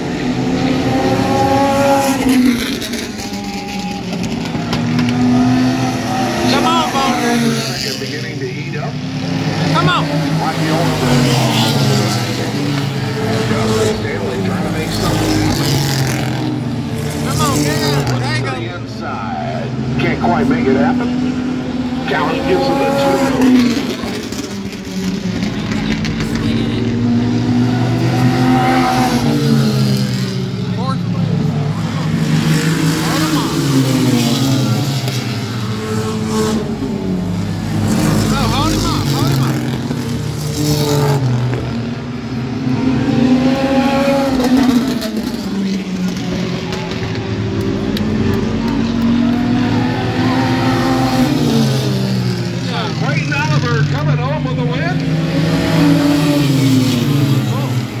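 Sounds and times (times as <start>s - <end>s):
race car engines passing: 0.0s - 58.0s.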